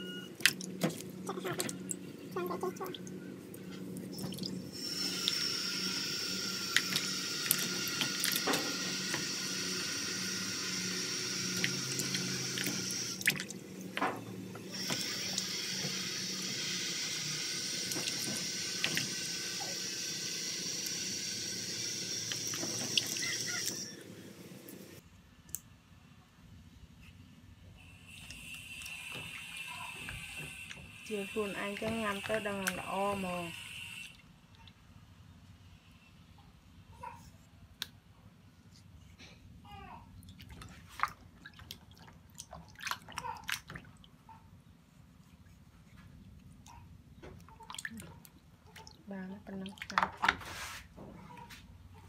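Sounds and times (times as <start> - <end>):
water running from a tap: 4.1 - 24.1, 28.1 - 34.2.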